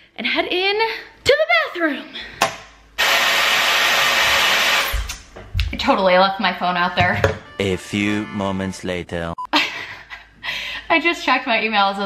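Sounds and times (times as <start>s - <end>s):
hair dryer running: 3.0s - 5.1s.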